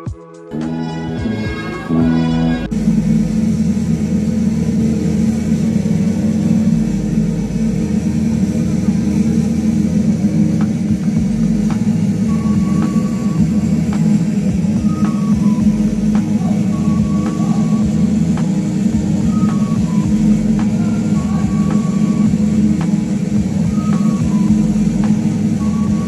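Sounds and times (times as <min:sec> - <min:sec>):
clean added music track: 0:00.0 - 0:26.0
music over public-address system: 0:00.0 - 0:26.0.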